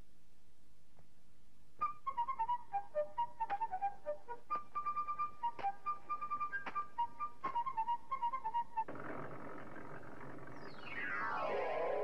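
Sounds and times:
falling electronic glide: 9.9 - 12.0
synthesizer jingle: 10.7 - 12.0.

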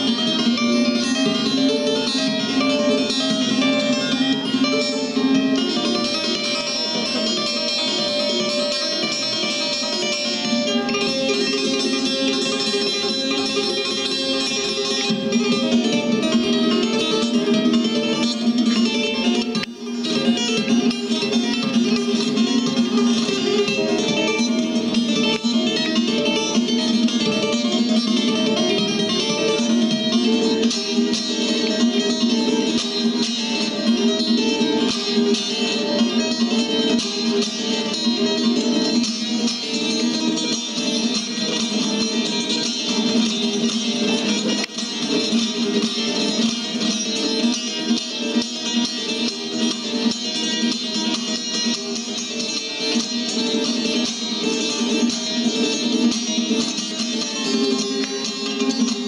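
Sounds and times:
long-necked lute plucked fast: 0.0 - 59.0.

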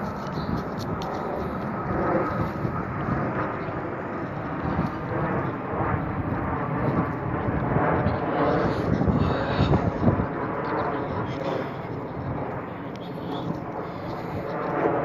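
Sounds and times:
airplane rumble overhead: 0.0 - 15.0.

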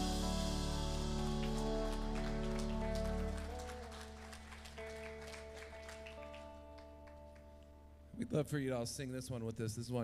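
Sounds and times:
bass: 0.0 - 8.6.

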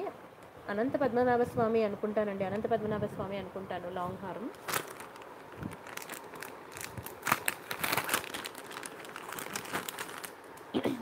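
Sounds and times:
plastic pouches crinkling: 4.4 - 10.8.

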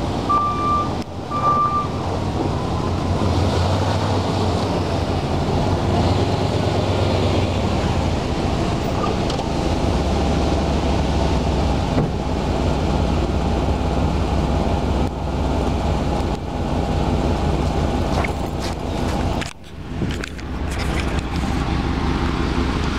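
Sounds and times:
engine exhaust rumble: 0.0 - 22.9.

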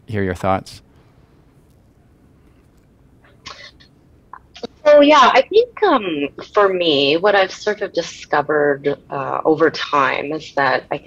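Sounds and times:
woman talking: 3.5 - 3.8, 4.4 - 11.0.

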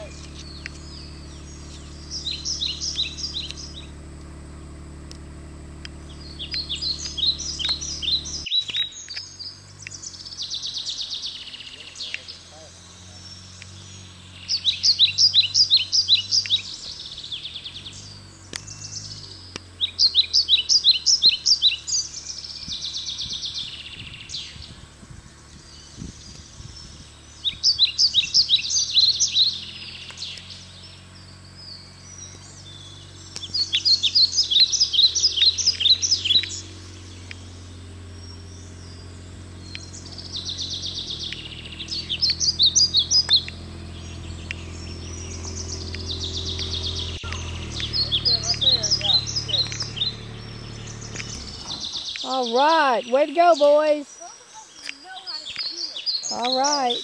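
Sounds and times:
songbird chirping: 0.0 - 57.0
utility vehicle engine humming: 0.0 - 57.0.

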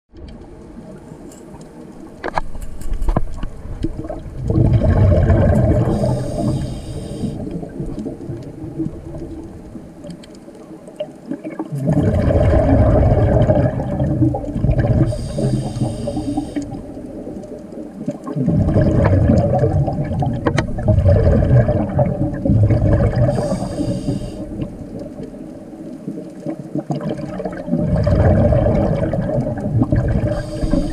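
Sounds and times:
muffled underwater rumble: 0.1 - 30.9
regulator inhale hiss: 5.9 - 7.5, 15.0 - 16.8, 23.2 - 24.6, 30.2 - 30.9
sharp clicks and knocks: 20.4 - 20.8.

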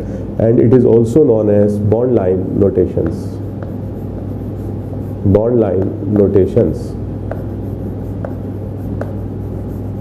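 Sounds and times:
chalk scratching on chalkboard: 2.7 - 6.4, 7.3 - 10.0
chalk clicking on board: 2.9 - 6.4, 7.3 - 10.0.

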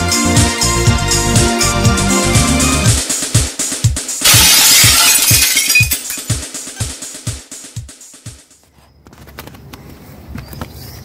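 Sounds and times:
music with bass drum beat: 0.0 - 4.2, 6.2 - 8.6
crashing shattering noise: 4.2 - 6.4.

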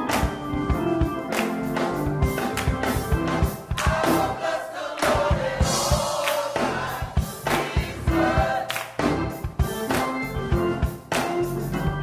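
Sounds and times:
steady regular beat: 0.0 - 12.0
gospel choir singing: 2.8 - 10.8.

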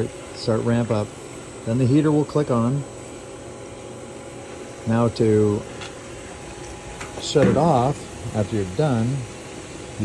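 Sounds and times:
pool pump whirring hum: 0.0 - 10.0.

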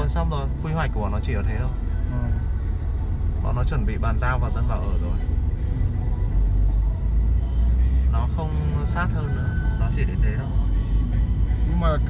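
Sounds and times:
road and engine rumble inside car: 0.0 - 12.0.

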